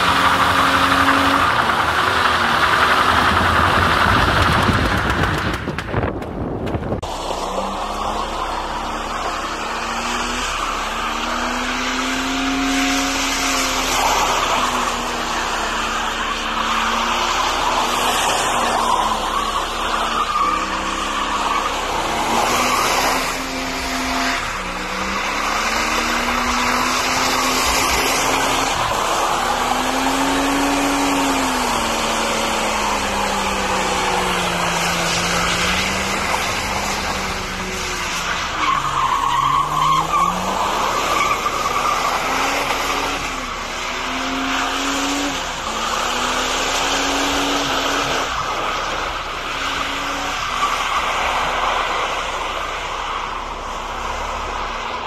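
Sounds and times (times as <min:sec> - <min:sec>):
car engine revving: 0:00.0 - 0:55.0.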